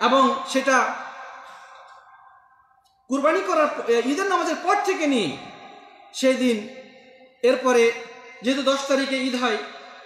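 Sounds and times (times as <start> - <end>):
man speaking amplified: 0.0 - 1.8, 3.1 - 10.0.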